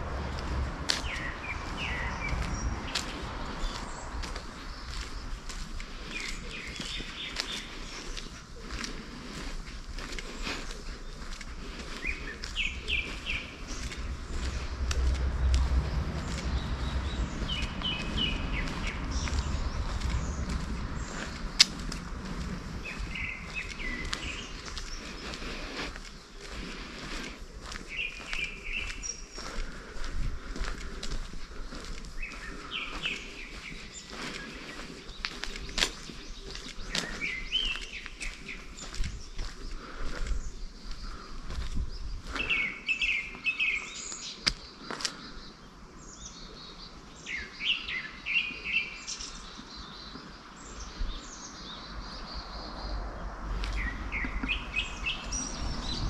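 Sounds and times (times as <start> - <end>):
low wind rumble on microphone: 0.0 - 43.2, 49.9 - 56.0
footsteps on paved path: 0.0 - 56.0
songbird chirping: 0.0 - 56.0.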